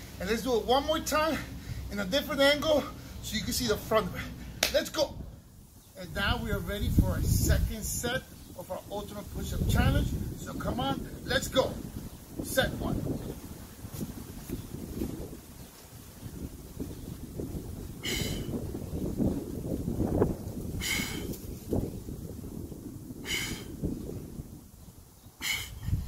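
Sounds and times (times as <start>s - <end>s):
wind rumbling on microphone: 5.1s - 26.0s
man breathing out hard: 18.0s - 18.6s, 20.7s - 21.4s, 23.2s - 23.9s, 25.4s - 26.0s.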